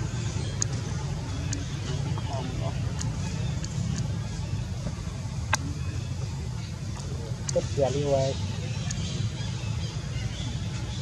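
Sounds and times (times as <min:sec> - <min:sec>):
faint voices: 0:00.0 - 0:10.9
low background rumble: 0:00.0 - 0:11.0
soft clicks: 0:00.5 - 0:00.8, 0:02.9 - 0:04.1.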